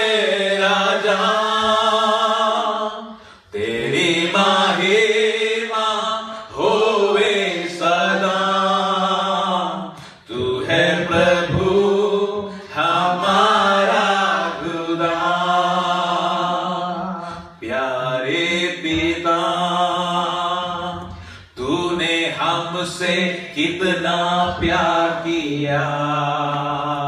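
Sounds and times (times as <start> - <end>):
men singing worship song: 0.0 - 27.0.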